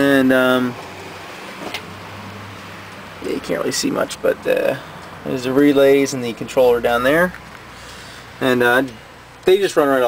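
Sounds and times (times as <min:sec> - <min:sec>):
low engine hum: 0:00.6 - 0:09.4.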